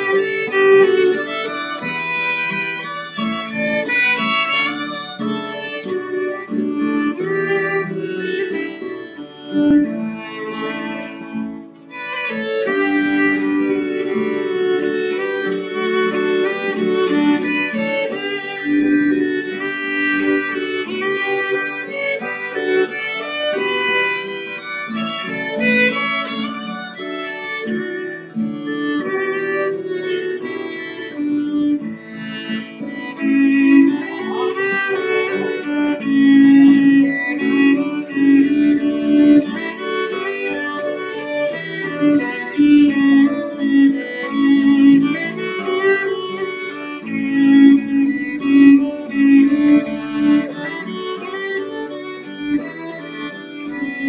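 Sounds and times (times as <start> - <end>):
fiddles playing a folk tune: 0.0 - 54.0
strummed acoustic guitar: 0.0 - 54.0.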